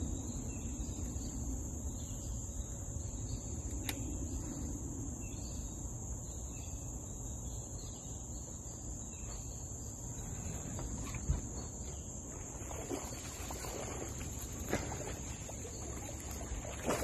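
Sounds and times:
crickets buzzing: 0:00.0 - 0:17.0
fish splashing at water surface: 0:12.5 - 0:17.0.

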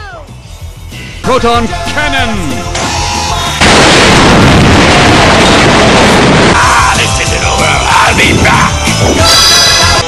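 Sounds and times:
loud explosion blast: 0:03.6 - 0:07.0.

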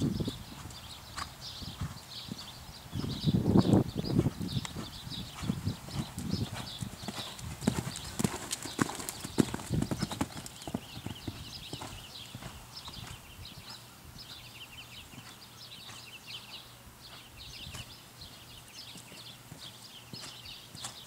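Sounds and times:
horse hoofbeats on dirt: 0:00.0 - 0:03.2, 0:04.0 - 0:14.5, 0:15.2 - 0:16.2, 0:18.8 - 0:21.0.

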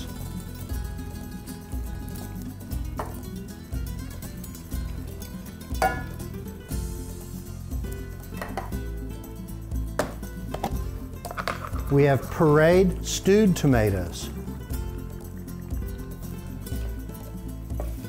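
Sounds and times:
soft background music: 0:00.0 - 0:18.0
tin can knocking on pot: 0:05.7 - 0:06.2, 0:08.4 - 0:08.8, 0:10.0 - 0:11.9.

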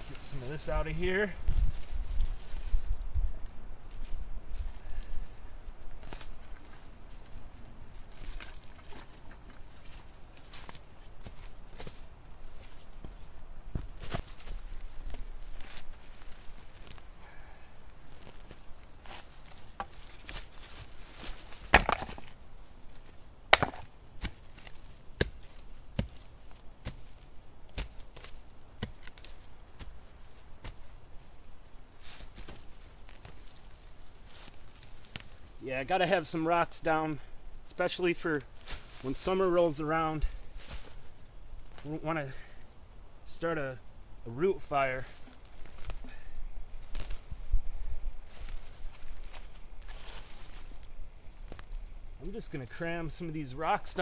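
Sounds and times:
stones knocking together: 0:21.5 - 0:22.4, 0:23.5 - 0:24.4
digging tool striking rocky ground: 0:21.6 - 0:22.4, 0:23.5 - 0:27.0.

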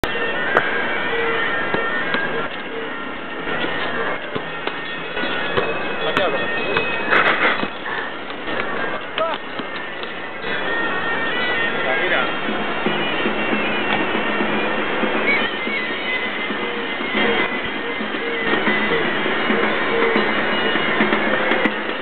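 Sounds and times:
hubbub of crowd voices: 0:00.0 - 0:22.0
reed pipes playing held notes: 0:00.0 - 0:22.0
sharp taps: 0:08.3 - 0:10.2.

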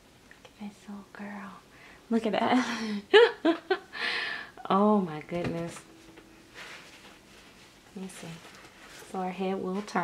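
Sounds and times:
woman's soft voice: 0:00.4 - 0:03.1, 0:08.0 - 0:08.5, 0:09.1 - 0:10.0.

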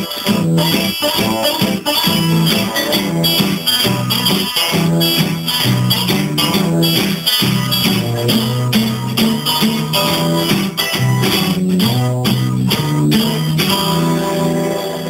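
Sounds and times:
acoustic guitars playing blues: 0:00.0 - 0:15.0.

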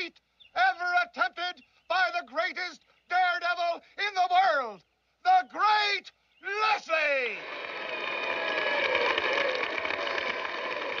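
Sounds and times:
man shouting announcement: 0:00.0 - 0:07.4
crowd cheering: 0:06.8 - 0:11.0.

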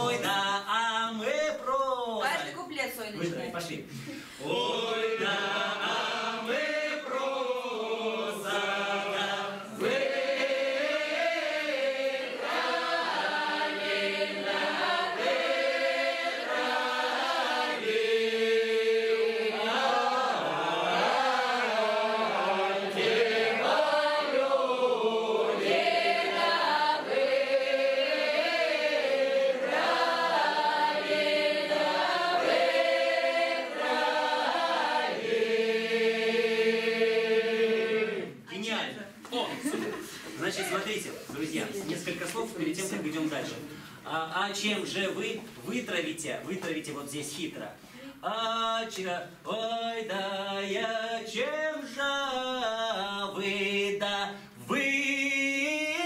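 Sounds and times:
group singing unaccompanied: 0:00.0 - 0:01.4, 0:04.3 - 0:38.5, 0:48.2 - 0:56.0.

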